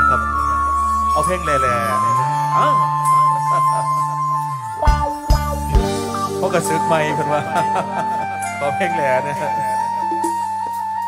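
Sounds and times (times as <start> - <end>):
sustained keyboard notes: 0.0 - 11.0.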